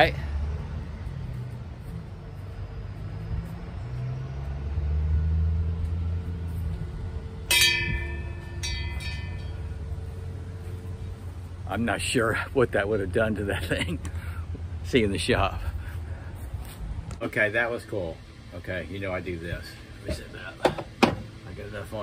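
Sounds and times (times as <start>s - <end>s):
small metal bell ringing: 7.5s - 10.0s.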